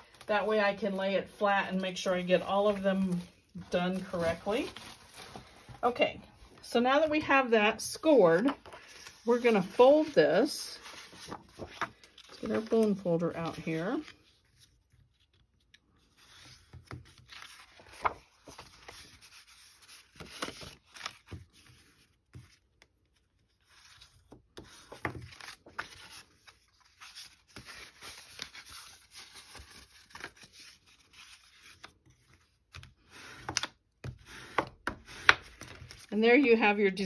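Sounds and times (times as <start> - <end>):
paper rubbing and rustling: 0.0 - 5.8, 8.4 - 15.5, 16.1 - 22.6, 23.6 - 36.1.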